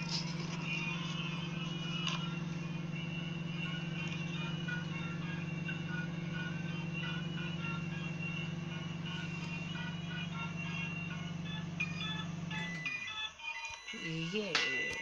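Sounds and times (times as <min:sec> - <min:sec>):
microwave oven humming: 0:00.0 - 0:15.0
music: 0:00.0 - 0:15.0.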